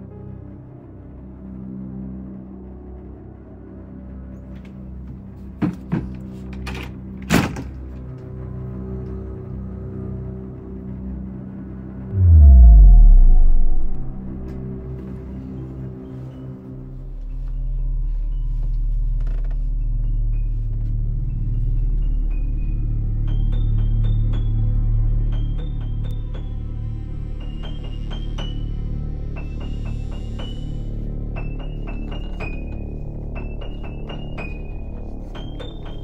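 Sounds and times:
eerie low drone music: 0:00.0 - 0:05.0, 0:08.0 - 0:36.0
deep steady drone: 0:12.0 - 0:15.4
loud bang: 0:12.1 - 0:15.0.

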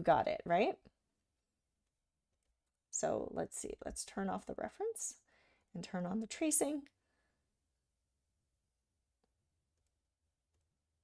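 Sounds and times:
woman speaking: 0:00.0 - 0:00.9, 0:03.0 - 0:05.2, 0:05.8 - 0:06.9.

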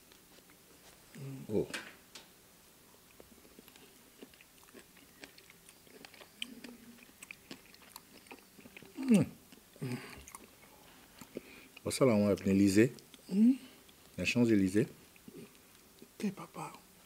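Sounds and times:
quiet chewing: 0:00.0 - 0:01.6, 0:02.8 - 0:17.0
man humming: 0:01.2 - 0:01.6.

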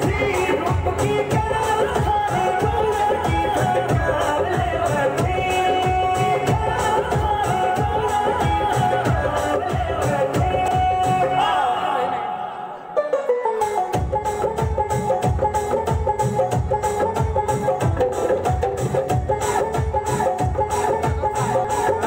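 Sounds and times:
steady drum beat: 0:00.0 - 0:11.4, 0:13.8 - 0:22.0
folk dance song: 0:00.0 - 0:22.0.

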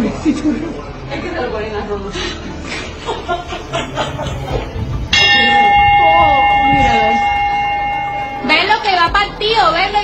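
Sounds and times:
metallic clang ringing: 0:05.1 - 0:08.8.

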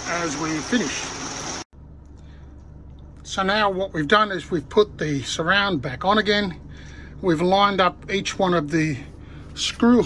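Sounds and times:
heavy rain hissing on a roof: 0:00.0 - 0:01.6
low hum: 0:00.0 - 0:10.0.

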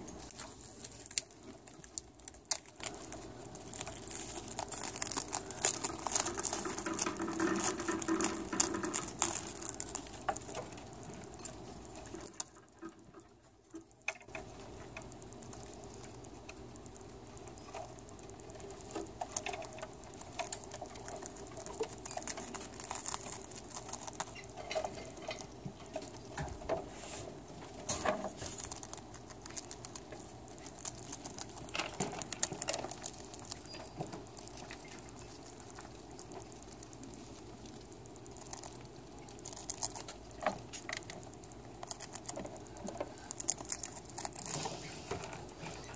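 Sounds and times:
rats chewing dried seaweed: 0:00.0 - 0:45.9.

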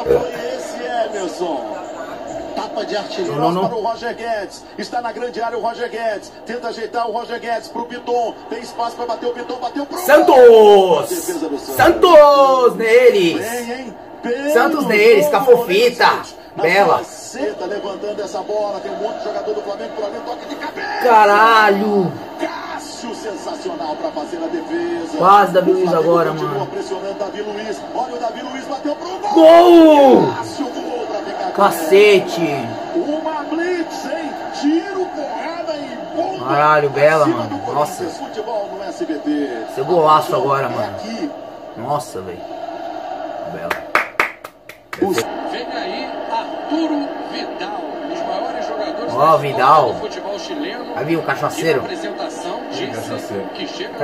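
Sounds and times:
man commentating: 0:00.0 - 0:42.3, 0:45.0 - 0:54.0
man clapping hands: 0:43.7 - 0:45.3.

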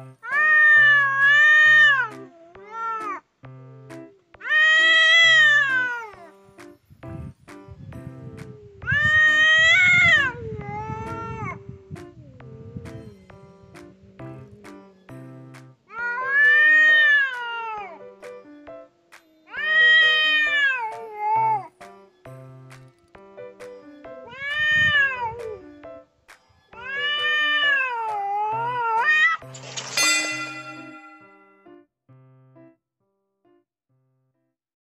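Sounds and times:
cat yowling: 0:00.2 - 0:03.2, 0:04.4 - 0:06.3, 0:08.6 - 0:11.6, 0:15.9 - 0:18.0, 0:19.5 - 0:21.7, 0:24.2 - 0:25.4, 0:26.8 - 0:29.4.

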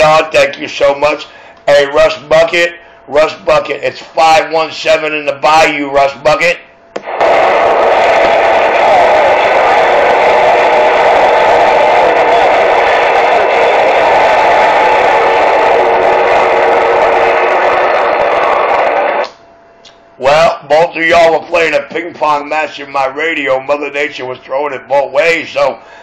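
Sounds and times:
radio static rush: 0:07.0 - 0:19.2.

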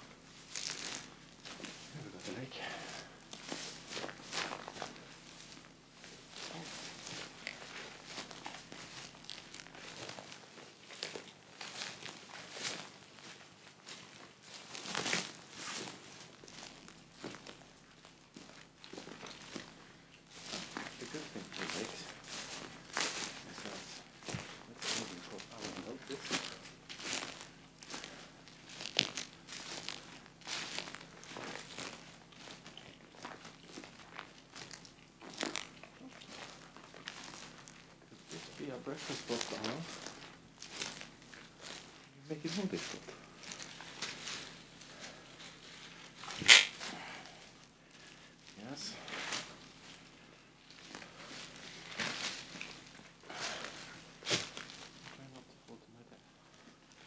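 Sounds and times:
footsteps through dry bracken: 0:00.0 - 0:57.0
plant stalks snapping: 0:46.3 - 0:46.9.

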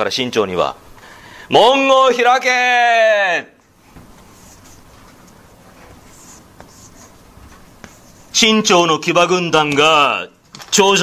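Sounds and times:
steady room hiss: 0:00.0 - 0:11.0
pen scratching while writing: 0:04.2 - 0:08.3.

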